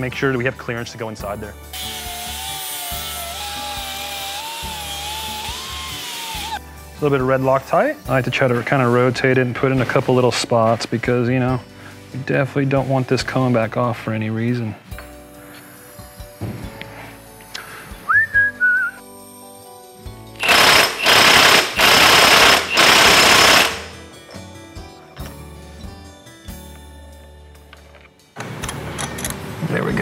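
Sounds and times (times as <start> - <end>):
soft background music: 0.0 - 20.4, 22.1 - 30.0
impact wrench rattling: 20.4 - 24.0.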